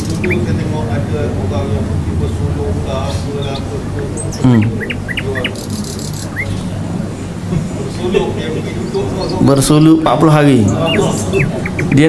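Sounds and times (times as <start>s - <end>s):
bird chirping: 0.0s - 7.2s, 8.5s - 9.7s, 10.4s - 12.0s
low steady hum: 0.0s - 12.0s.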